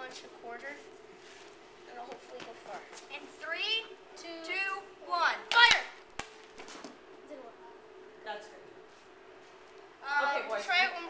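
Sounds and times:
coin striking pavement: 6.1 - 6.8.

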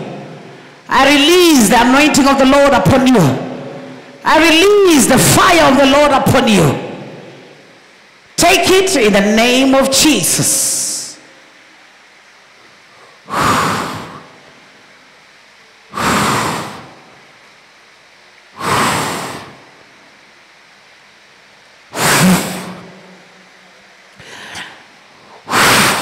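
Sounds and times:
breaths blown into microphone: 21.9 - 23.0, 24.2 - 26.0.

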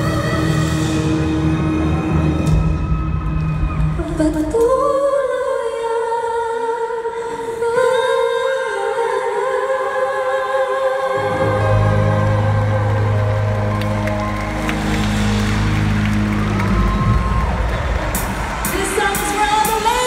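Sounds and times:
crowd noise: 0.0 - 4.9, 10.9 - 20.0
female group singing in harmony: 7.6 - 13.3.

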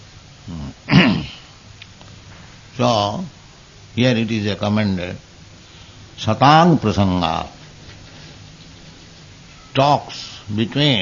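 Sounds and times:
man clearing his throat: 0.5 - 1.5.

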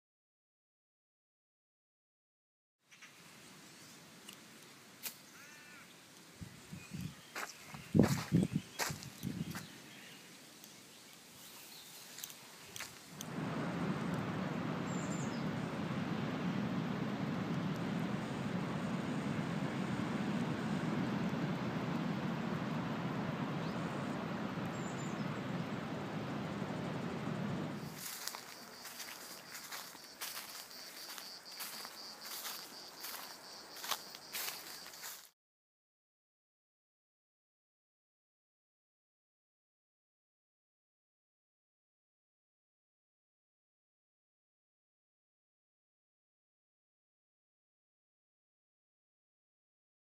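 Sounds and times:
steady rushing noise: 12.9 - 35.2
steady high-pitched tone: 13.2 - 34.7.

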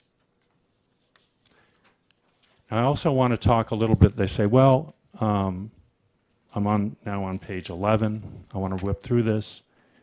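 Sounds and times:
paper pages turning: 0.4 - 1.4.

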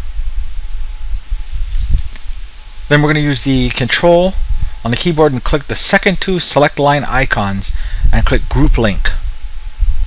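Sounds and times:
faint high hum: 0.0 - 10.0
low microphone rumble: 0.0 - 10.0.

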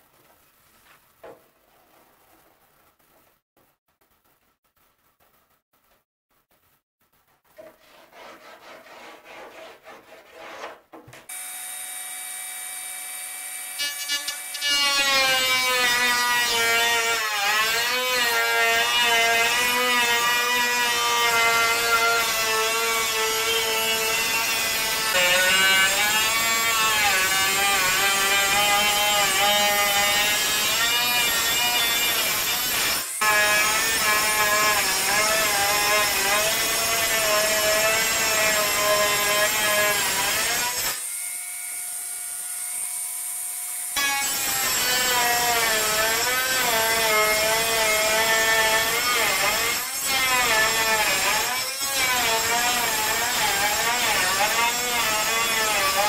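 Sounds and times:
scratchy sanding: 7.6 - 10.8.

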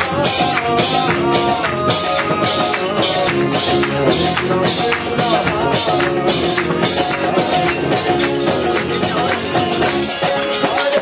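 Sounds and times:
drum beat: 0.0 - 11.0
jingling hand cymbals: 0.0 - 11.0
sustained harmonium tones: 0.0 - 11.0.

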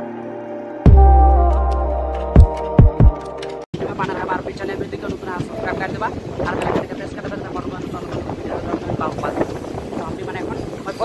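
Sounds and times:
train rumbling: 3.8 - 11.0
wind buffeting microphone: 3.8 - 11.0.

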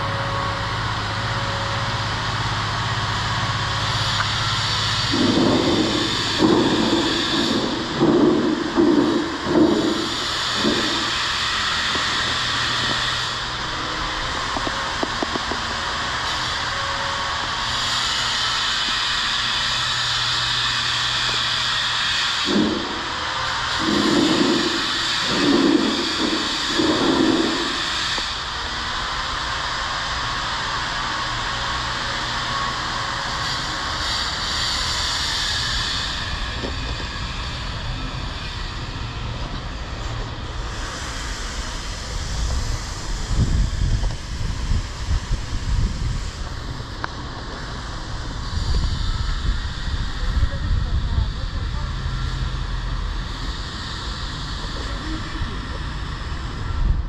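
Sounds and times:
steady hissing: 0.0 - 56.6.

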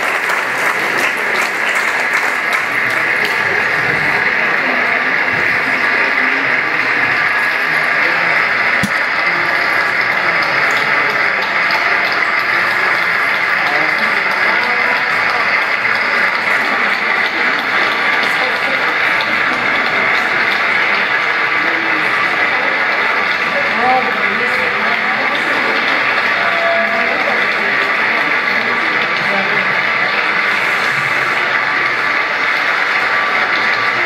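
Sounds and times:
audience applause: 0.0 - 34.0.

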